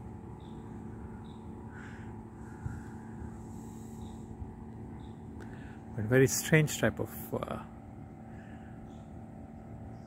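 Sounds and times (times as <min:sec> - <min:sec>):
steady low hum: 0:00.0 - 0:10.0
high bird calls: 0:00.3 - 0:05.8.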